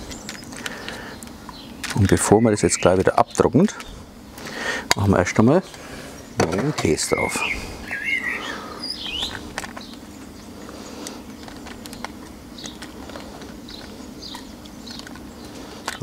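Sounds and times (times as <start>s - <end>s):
small birds chirping: 0.0s - 16.0s
steady low hum: 0.0s - 16.0s.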